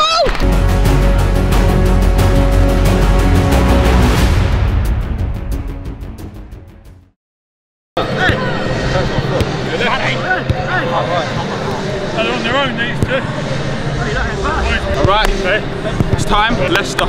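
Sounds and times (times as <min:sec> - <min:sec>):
players calling and chattering: 0:08.0 - 0:17.0
footballs being kicked: 0:16.0 - 0:16.4.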